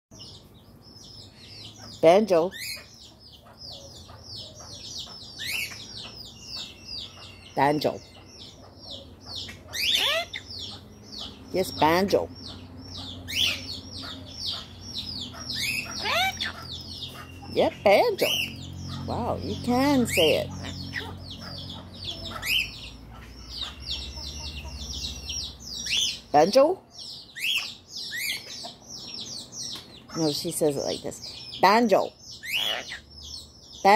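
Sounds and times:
birds chirping: 0.1s - 33.9s.

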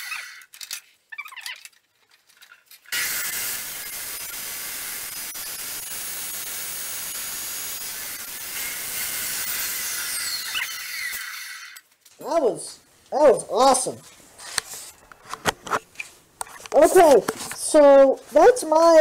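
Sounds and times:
chop saw grinding steel: 2.9s - 11.8s.

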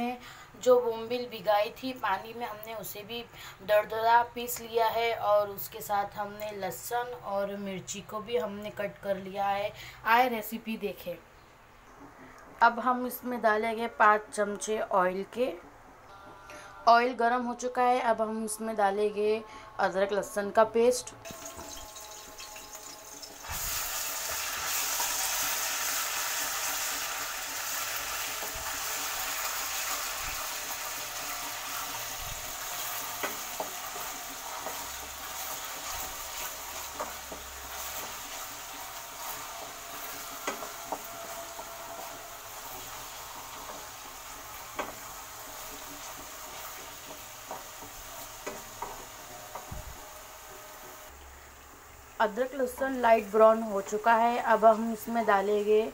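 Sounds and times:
paste sizzling in hot oil: 21.3s - 55.4s.

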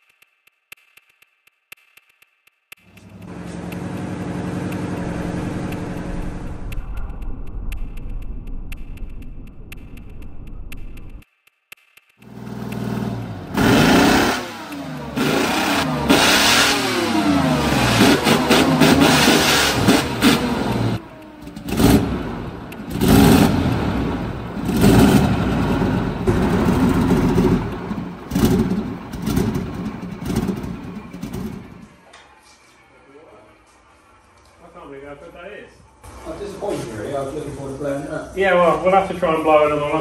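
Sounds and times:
large diesel engine revving: 3.0s - 6.5s, 12.3s - 31.9s.

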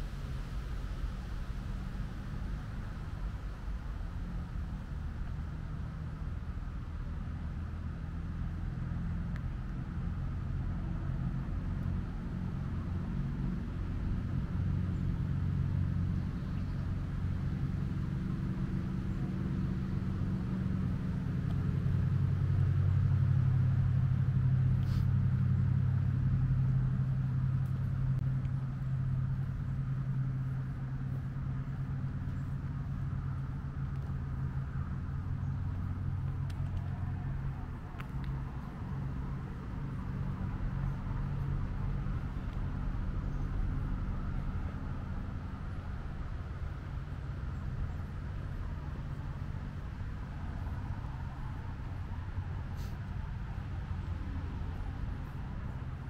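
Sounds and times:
distant engine rumble: 0.0s - 56.0s.

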